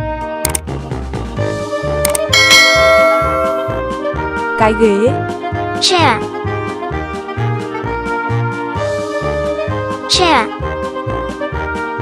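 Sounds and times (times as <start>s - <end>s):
background music with steady beat: 0.0s - 12.0s
bright bell-like chime: 2.4s - 4.0s.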